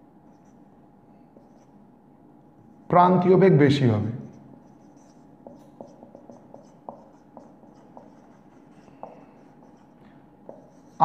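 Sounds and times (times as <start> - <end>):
marker writing on whiteboard: 0.3 - 0.6, 1.2 - 1.8, 4.2 - 11.0.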